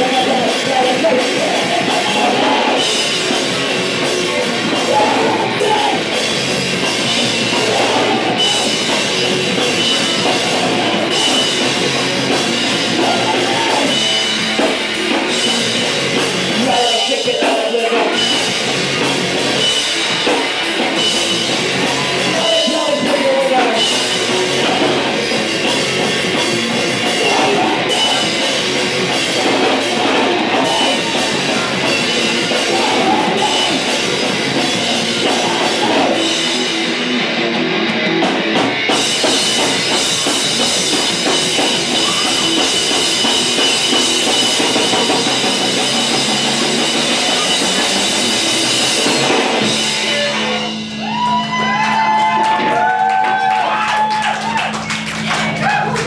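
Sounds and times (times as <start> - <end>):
sliding high guitar tones: 0.0 - 52.8
live rock band playing: 0.0 - 56.0.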